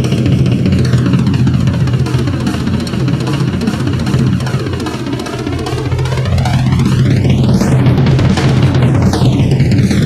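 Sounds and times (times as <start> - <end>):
drum solo on drum kit: 0.0 - 10.0.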